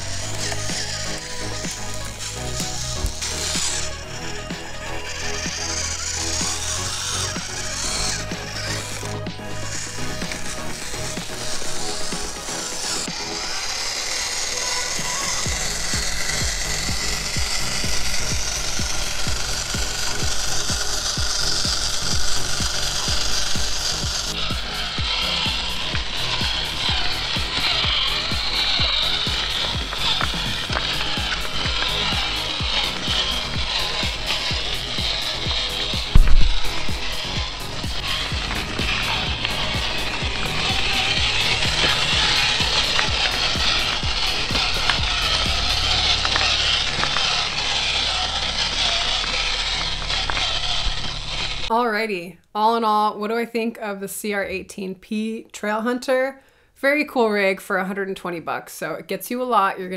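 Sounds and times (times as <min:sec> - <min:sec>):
background music: 0:00.0 - 0:49.2
small motor and gears whirring: 0:00.0 - 0:51.7
tyres crunching on stones: 0:00.0 - 0:51.7.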